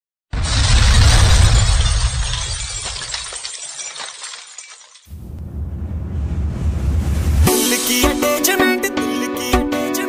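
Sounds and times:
glass shattering crash: 0.3s - 5.3s
falling glass shards tinkling: 0.4s - 5.2s.

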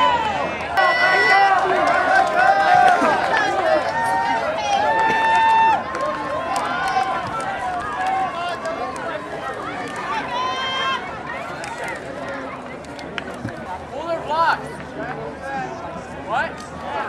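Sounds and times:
long drawn-out yell: 0.0s - 8.5s
spectators shouting and cheering: 0.0s - 17.0s.

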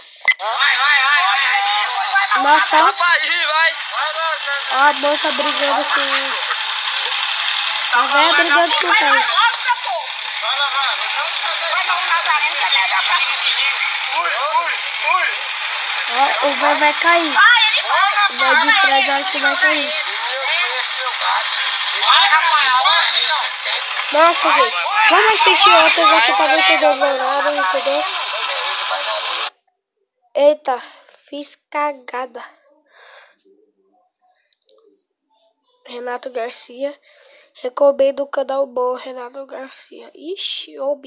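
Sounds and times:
voices from phone video: 0.0s - 29.7s, 30.3s - 41.0s
steady hiss: 3.4s - 29.5s
high-pitched voices calling out: 4.6s - 10.2s, 16.0s - 29.5s.

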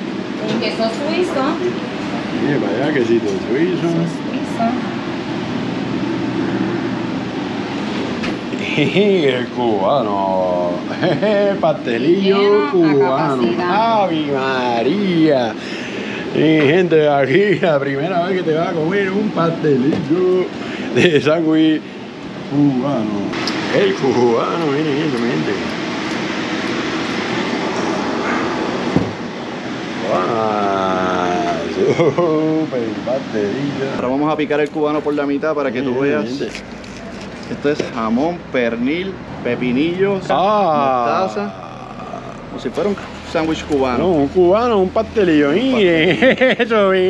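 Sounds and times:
steady mechanical drone: 0.0s - 47.0s
steady noise: 0.0s - 47.0s.

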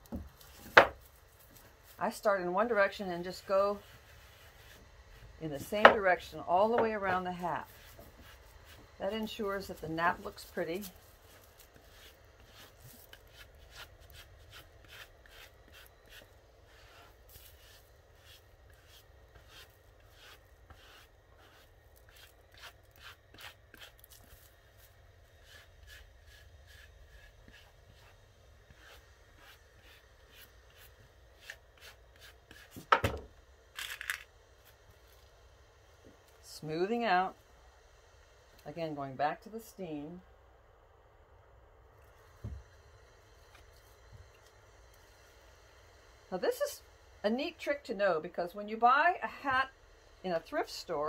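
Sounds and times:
brush strokes on felt: 0.3s - 32.9s.

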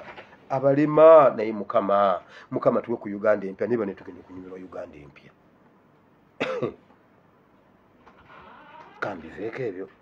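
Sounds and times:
man coughing: 6.4s - 6.8s.

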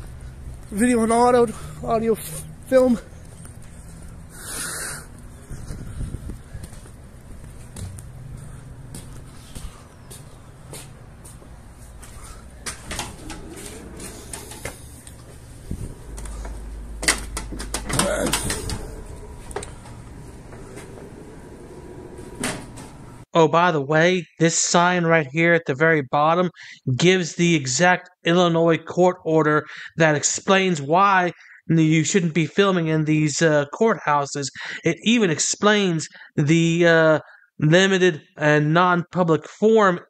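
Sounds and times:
footsteps: 5.1s - 23.3s
steady low rumble: 5.1s - 23.3s
glass door clattering open: 12.5s - 23.2s.

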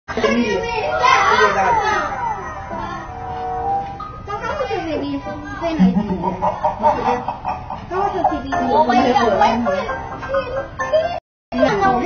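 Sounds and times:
young children talking: 0.2s - 3.3s.

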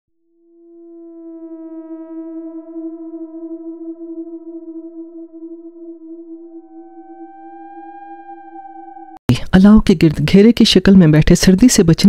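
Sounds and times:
steady electronic synthesizer note: 0.2s - 9.2s.

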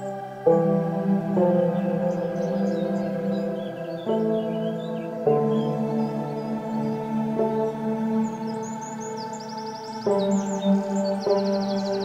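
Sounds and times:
small birds chirping: 0.0s - 12.0s
sustained meditation bell tones: 0.0s - 12.0s.

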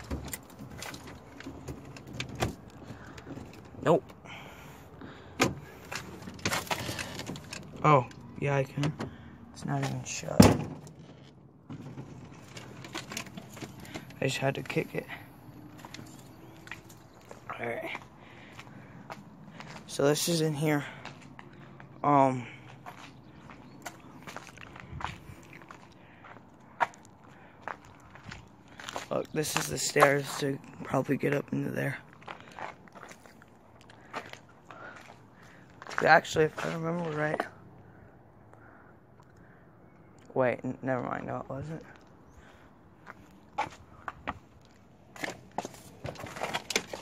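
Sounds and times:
door rattling and clattering: 0.0s - 3.8s
debris crunching underfoot: 5.6s - 7.8s, 22.6s - 30.5s, 31.9s - 37.5s, 42.0s - 47.0s
footsteps on rubble: 15.7s - 20.0s, 22.6s - 31.3s, 31.9s - 37.5s, 41.9s - 47.0s.

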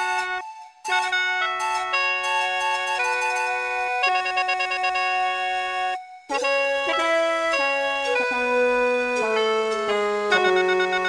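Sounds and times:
mouth organ melody with drone: 0.0s - 11.0s.

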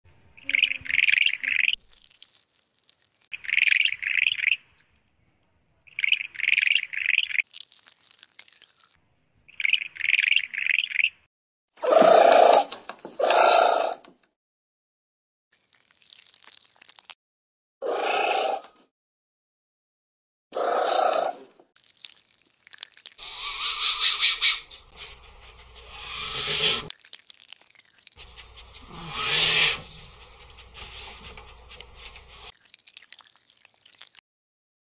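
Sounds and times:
high chirping call: 0.4s - 1.8s, 3.3s - 4.9s, 5.9s - 7.4s
harsh loud calls: 23.2s - 26.9s, 28.6s - 30.0s
animal snort: 28.3s - 31.2s.

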